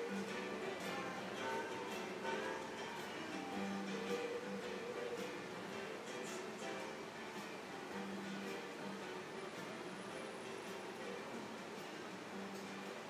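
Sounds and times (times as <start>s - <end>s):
plucked guitar music: 0.0s - 13.0s.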